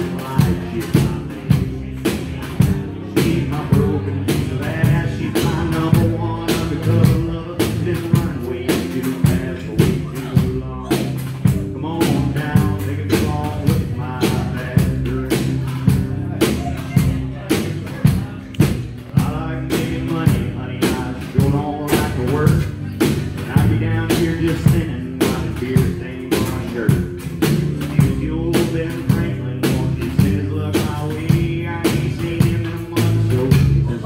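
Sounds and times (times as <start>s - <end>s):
live band playing: 0.0s - 34.0s
man singing: 0.0s - 34.0s
steady drum beat: 0.0s - 34.0s.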